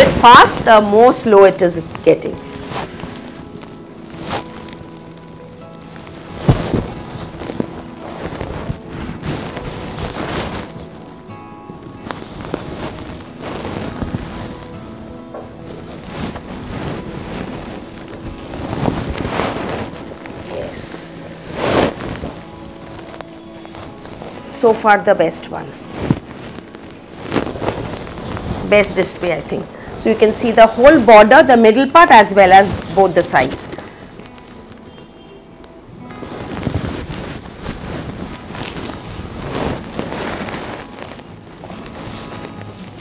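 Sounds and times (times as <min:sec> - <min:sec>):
silk fabric rustling: 0:00.0 - 0:43.0
soft background music: 0:00.0 - 0:43.0.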